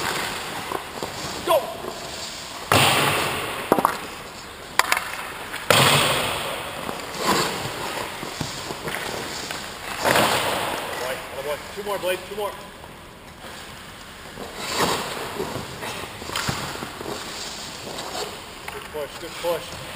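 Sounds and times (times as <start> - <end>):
skate blades scraping on ice: 0.0 - 11.0, 13.5 - 19.9.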